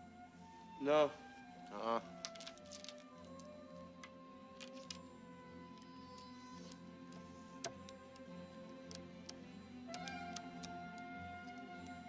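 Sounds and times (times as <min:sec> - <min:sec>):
quiet film score: 0:00.0 - 0:12.0
game tiles clicking on table: 0:02.2 - 0:05.0, 0:10.0 - 0:11.6.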